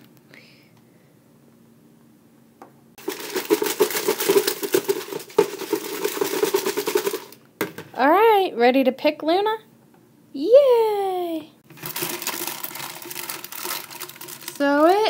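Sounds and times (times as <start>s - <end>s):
foil bags rattling in plastic bucket: 3.0s - 7.4s, 11.6s - 15.0s.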